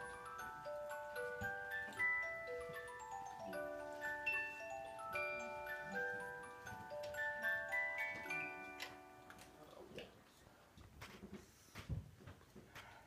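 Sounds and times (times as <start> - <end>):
music box melody: 0.0 - 9.6.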